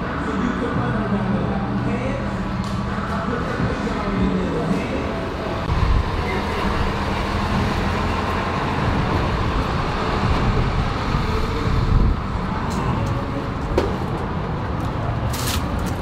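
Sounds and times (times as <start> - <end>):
rumble of passing cars: 0.0 - 16.0.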